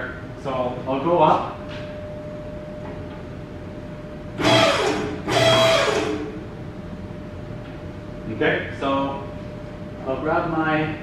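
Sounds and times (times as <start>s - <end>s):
hydraulic lift pump motor: 4.4s - 6.4s.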